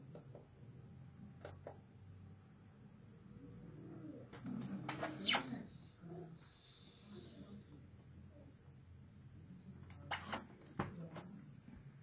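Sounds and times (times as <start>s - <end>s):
sharp falling squeak: 4.9s - 5.8s.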